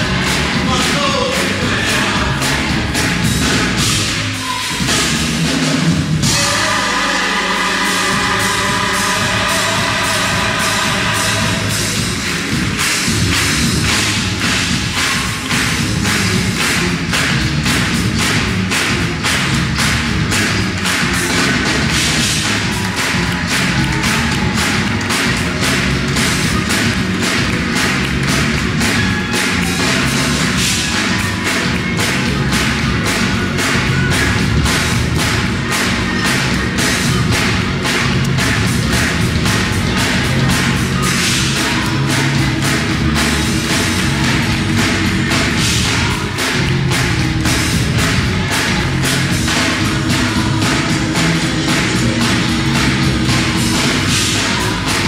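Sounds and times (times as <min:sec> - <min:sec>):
gospel choir singing: 0:00.0 - 0:05.1, 0:05.7 - 0:13.1, 0:48.0 - 0:55.0
drum kit beat: 0:00.0 - 0:55.0
rhythmic hand claps: 0:00.0 - 0:55.0.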